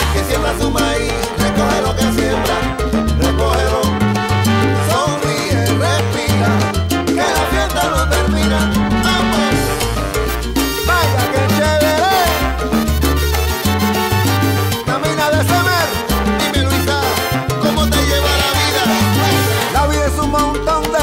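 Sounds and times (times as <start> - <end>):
salsa music: 0.0 - 21.0.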